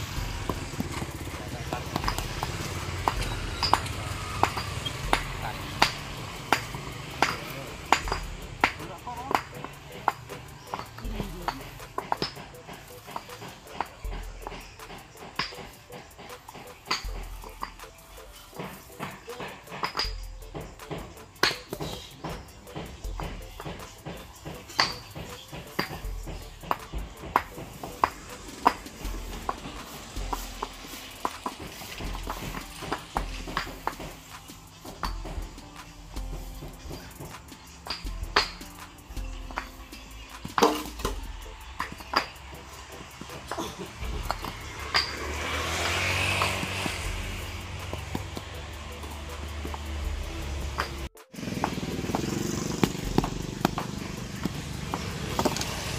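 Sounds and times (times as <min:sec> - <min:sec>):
background music with low beat: 0:00.0 - 0:55.9
concrete paving blocks clinking: 0:00.2 - 0:55.9.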